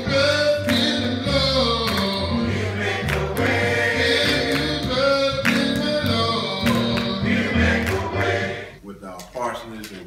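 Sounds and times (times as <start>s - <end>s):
congregation singing gospel song: 0.0s - 8.9s.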